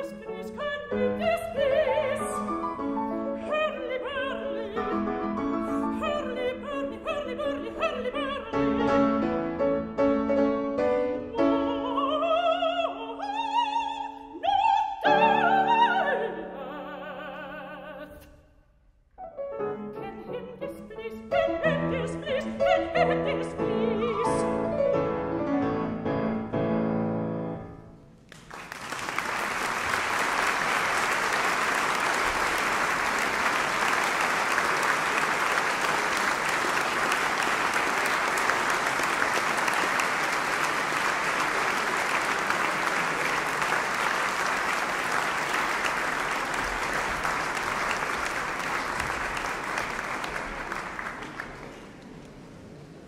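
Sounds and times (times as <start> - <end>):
audience applauding: 28.3 - 52.5.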